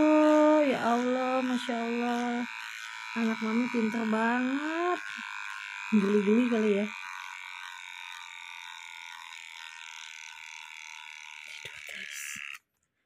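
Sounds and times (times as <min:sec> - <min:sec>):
electric hair clippers buzzing: 0:00.0 - 0:12.8.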